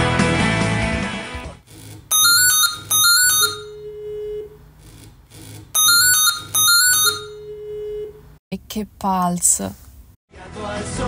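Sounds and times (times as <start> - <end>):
electronic alert tone: 2.1 - 3.8, 5.8 - 7.5.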